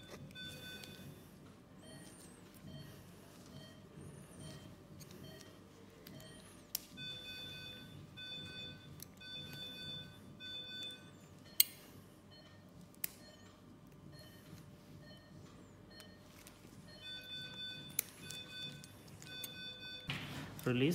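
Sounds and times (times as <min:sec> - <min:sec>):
medical equipment alarm beeping: 0:00.0 - 0:20.2.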